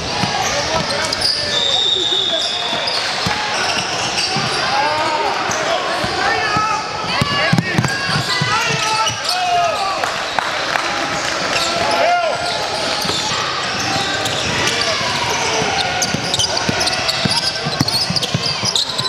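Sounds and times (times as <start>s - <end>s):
chatter of players and spectators: 0.0s - 19.0s
sneakers squeaking: 0.0s - 19.0s.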